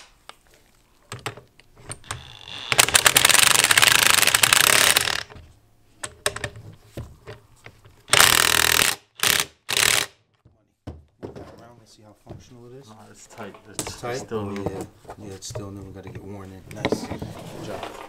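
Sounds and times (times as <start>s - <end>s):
impact wrench rattling: 1.2s - 5.4s, 8.1s - 10.1s.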